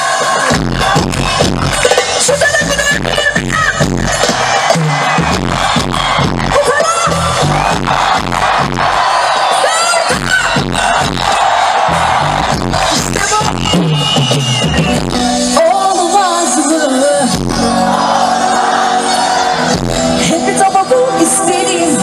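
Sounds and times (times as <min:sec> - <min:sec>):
crowd noise: 0:00.0 - 0:22.0
loud pop music over pa: 0:00.0 - 0:22.0.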